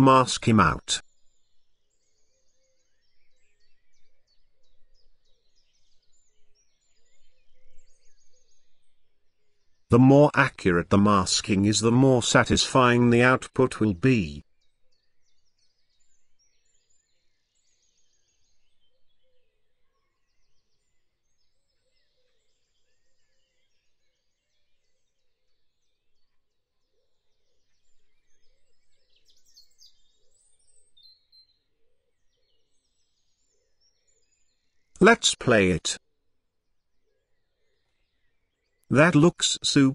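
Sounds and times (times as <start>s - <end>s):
faint birds chirping: 0.0s - 36.0s.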